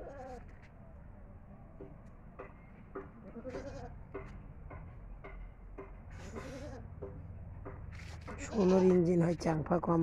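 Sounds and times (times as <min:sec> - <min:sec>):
goat bleating: 0:03.2 - 0:04.0, 0:06.3 - 0:06.9, 0:08.4 - 0:09.0.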